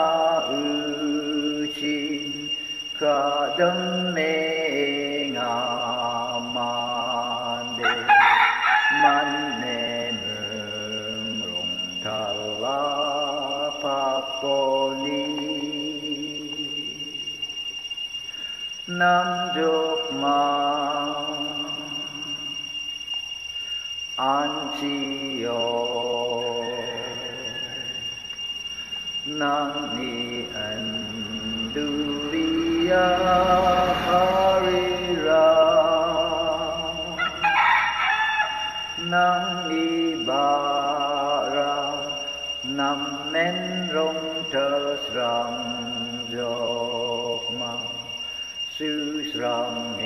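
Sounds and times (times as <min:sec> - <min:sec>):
man chanting: 0:00.0 - 0:17.0, 0:24.2 - 0:28.0, 0:29.3 - 0:38.1
high-pitched electronic whine: 0:00.0 - 0:50.0.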